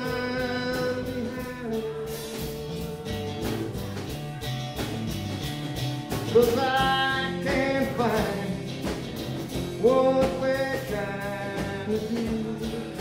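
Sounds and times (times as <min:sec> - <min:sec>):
strummed acoustic guitars: 0:00.0 - 0:13.0.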